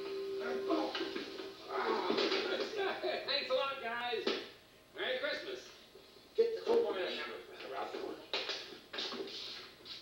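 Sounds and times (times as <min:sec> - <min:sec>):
television voices through small speaker: 0:00.3 - 0:10.0.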